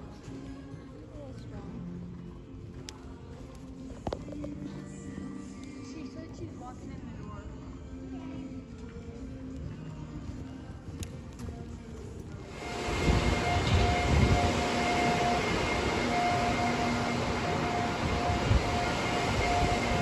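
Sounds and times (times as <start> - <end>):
loud rushing and rumbling: 12.5 - 20.0.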